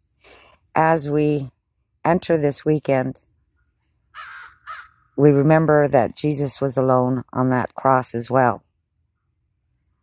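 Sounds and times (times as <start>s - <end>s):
crow cawing: 4.1s - 5.2s.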